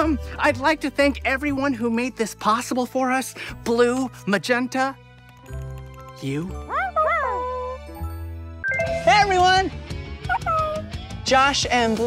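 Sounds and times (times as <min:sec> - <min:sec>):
light music with rising glide: 0:04.3 - 0:10.3.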